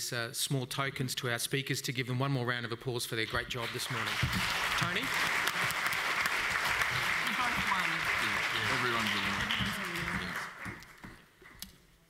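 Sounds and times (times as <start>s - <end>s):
audience applauding: 3.5s - 11.3s.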